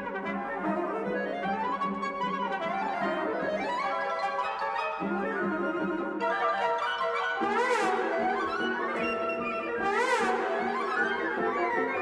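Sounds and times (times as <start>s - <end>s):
orchestral music with brass: 0.0s - 12.0s.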